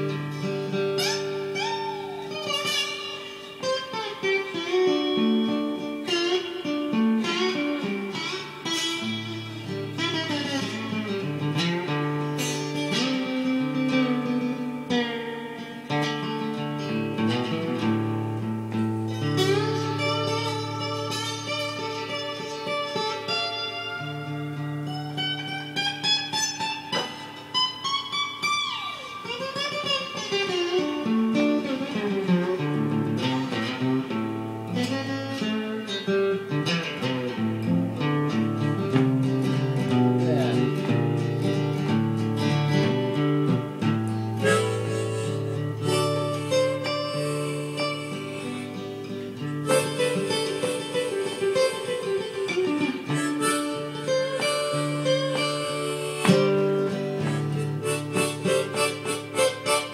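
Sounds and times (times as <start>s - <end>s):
blues guitar playing: 0.0s - 59.9s.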